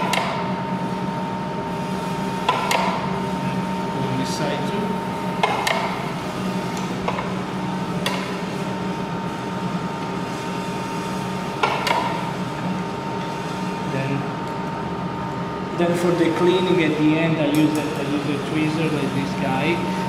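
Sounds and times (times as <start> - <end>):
steady background hum: 0.0 - 20.0.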